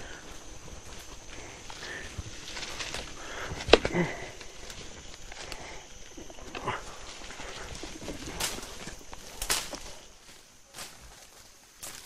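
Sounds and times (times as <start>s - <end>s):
birds calling: 0.0s - 10.6s
footsteps crunching dry leaves: 0.0s - 12.0s.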